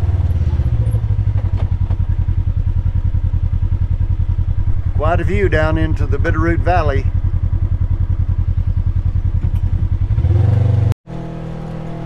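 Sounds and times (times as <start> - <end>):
engine running at low speed: 0.0 - 12.0.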